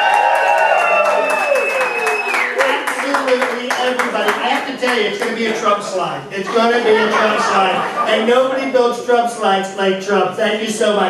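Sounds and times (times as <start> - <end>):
audience clapping and cheering: 0.0 - 5.6.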